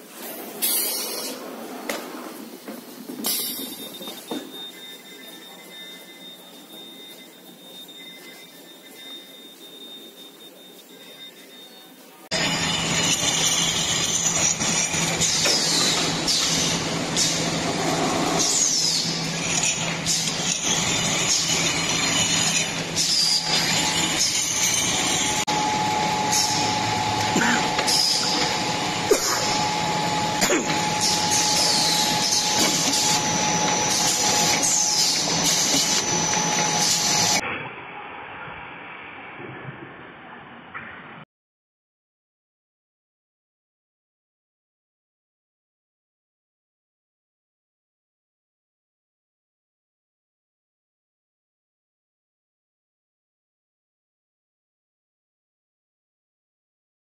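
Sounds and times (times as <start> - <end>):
short high-pitched squeals: 0.6 - 1.4, 3.2 - 37.4
high-pitched machine whine: 2.3 - 39.0
machine running: 12.3 - 39.2.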